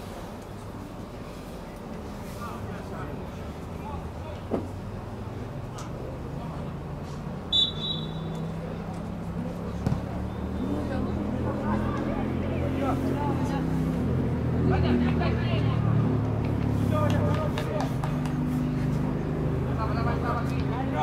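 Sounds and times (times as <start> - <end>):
low engine-like hum: 0.0 - 21.0.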